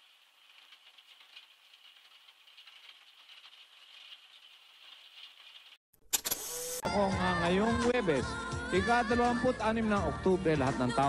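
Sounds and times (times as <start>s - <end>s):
crackling hiss of old video: 0.0s - 5.8s
man talking: 6.8s - 11.0s
music: 6.8s - 11.0s.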